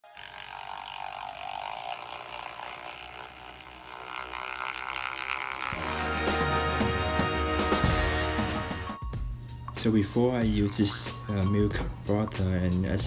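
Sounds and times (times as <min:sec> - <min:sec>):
electric milk frother whirring: 0:00.0 - 0:06.2
intro music: 0:05.8 - 0:13.0.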